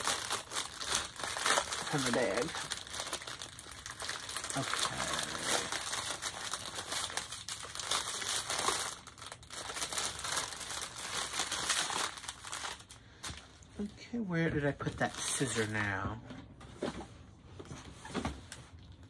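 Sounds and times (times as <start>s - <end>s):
plastic bags crinkling: 0.0s - 13.9s, 14.8s - 15.9s.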